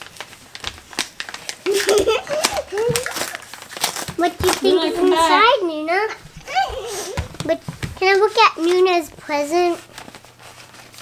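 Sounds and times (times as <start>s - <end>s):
paper wrapping rustling: 0.0s - 5.6s, 6.4s - 11.0s
toddler vocalizing: 6.5s - 7.2s.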